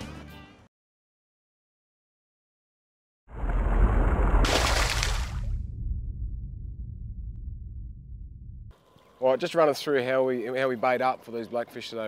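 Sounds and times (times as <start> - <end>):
deep boom with noise rush: 3.3 - 8.7
low rumble: 3.3 - 8.8.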